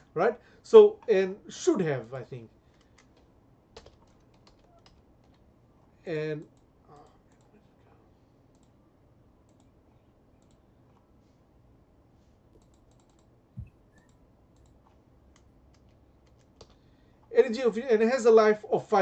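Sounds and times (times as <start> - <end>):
computer keyboard keystrokes: 2.7 - 5.4, 12.6 - 13.3, 14.0 - 16.8.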